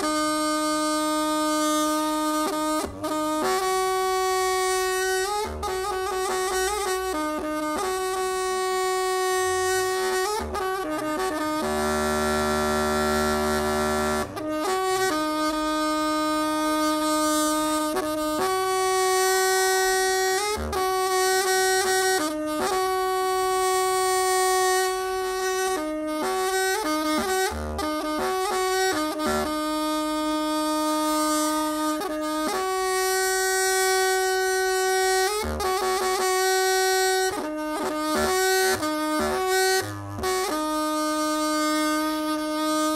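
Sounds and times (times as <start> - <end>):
reedy wind pipe note: 0.0 - 42.9.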